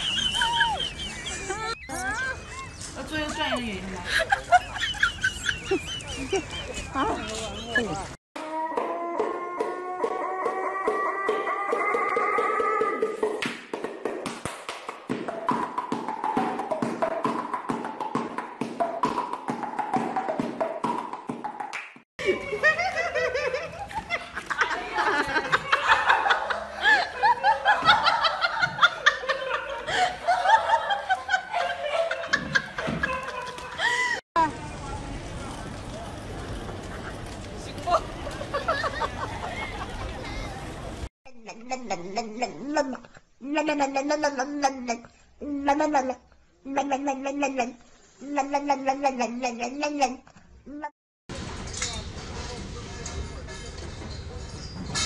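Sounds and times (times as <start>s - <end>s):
high-pitched giggling: 0.0s - 8.1s, 41.3s - 50.9s
woman laughing: 0.0s - 8.1s, 22.2s - 34.2s
woman speaking: 3.0s - 4.3s
high whimper-like cries: 8.4s - 13.1s.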